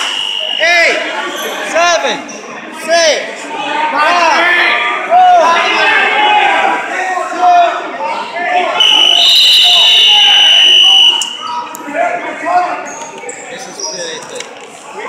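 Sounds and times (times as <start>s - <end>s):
spectators shouting: 3.9s - 12.2s.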